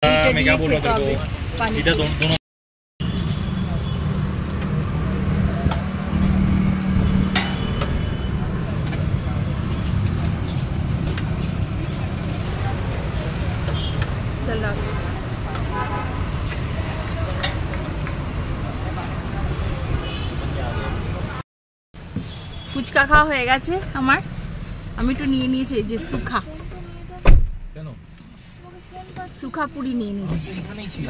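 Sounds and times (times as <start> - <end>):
road traffic rumble: 0.0 - 2.4, 3.0 - 21.4, 22.0 - 31.0.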